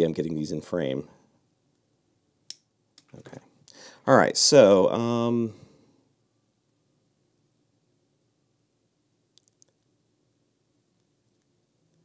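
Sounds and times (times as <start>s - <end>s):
sharp metal click with ring: 2.5s - 2.7s.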